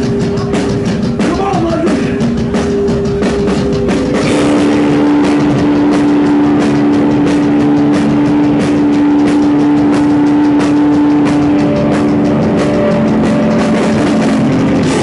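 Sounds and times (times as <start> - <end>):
crashing drums and cymbals: 0.0 - 15.0
distorted electric guitar drone: 0.0 - 15.0
punk band playing loud: 0.0 - 15.0.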